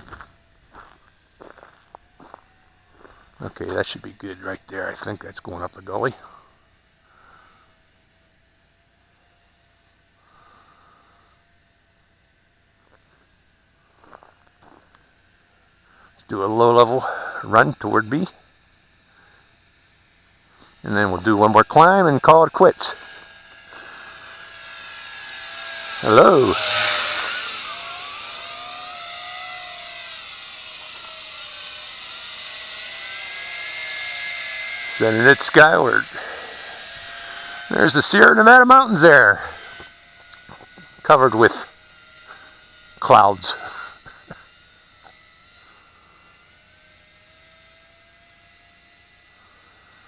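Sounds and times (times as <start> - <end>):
drone propellers whining: 0.0 - 50.0
faint breath: 6.2 - 7.7, 10.2 - 11.4.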